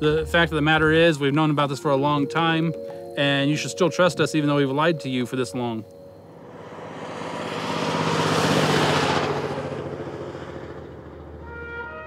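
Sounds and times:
vehicle driving past: 6.0 - 12.0.

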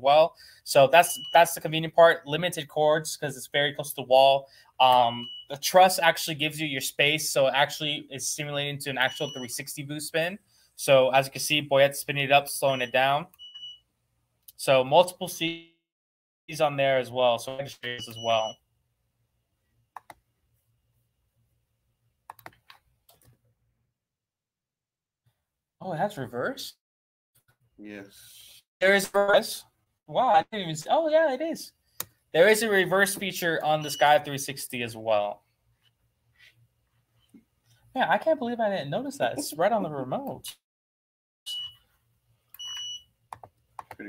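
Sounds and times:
laptop keyboard typing clicks: 22.3 - 23.3
high electronic beeps: 33.7 - 34.3.

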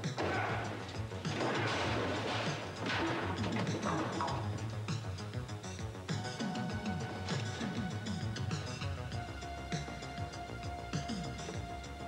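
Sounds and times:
tense drama music with drone: 0.0 - 12.0
crashing and clattering: 0.2 - 4.6.

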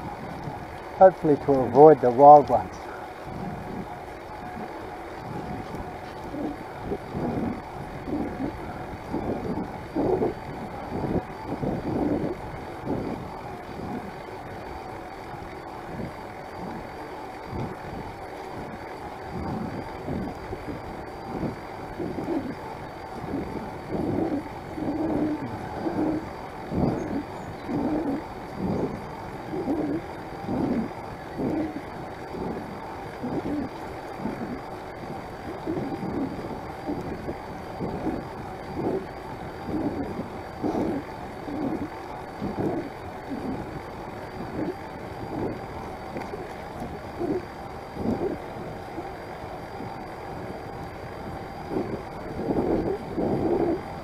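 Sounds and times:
wind rushing over microphone: 0.0 - 54.0.

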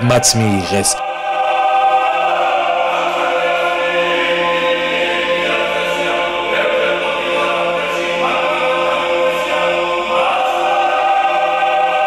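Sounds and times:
men's choir singing a cappella: 0.0 - 12.0.

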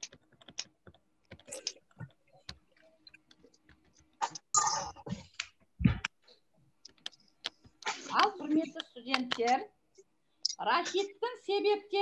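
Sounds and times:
computer keyboard typing: 0.0 - 1.5.

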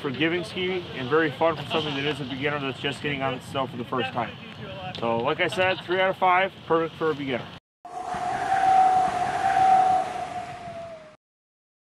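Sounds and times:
noisy whoosh: 7.9 - 11.2
whistle-like tone: 7.9 - 11.2.

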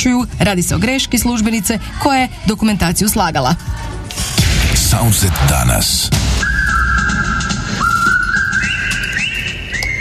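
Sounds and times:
whistle-like jingle lead: 6.4 - 10.0.

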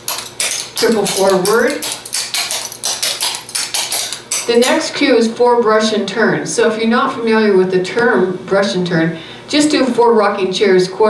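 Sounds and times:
tap shoes striking hard floor: 0.0 - 4.8.

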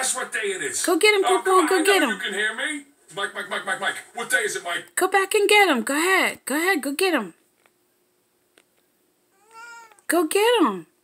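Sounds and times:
cat meowing: 9.3 - 10.1.

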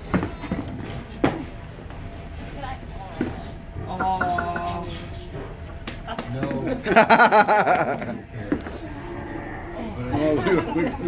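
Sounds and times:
indistinct voices in large room: 0.0 - 11.0.

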